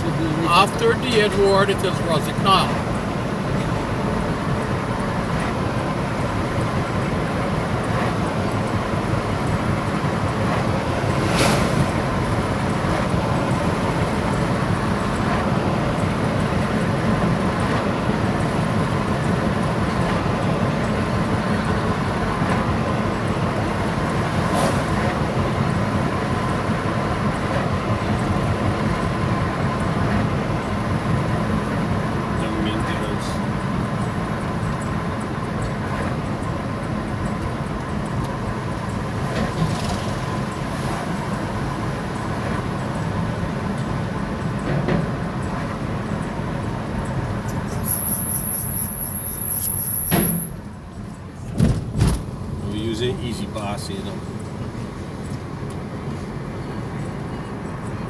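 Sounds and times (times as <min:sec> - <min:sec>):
road and tyre noise: 0:00.0 - 0:58.0.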